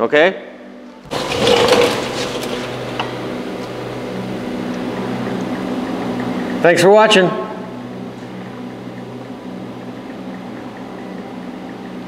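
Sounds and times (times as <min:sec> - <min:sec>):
low mechanical hum with hiss: 0:00.0 - 0:12.0.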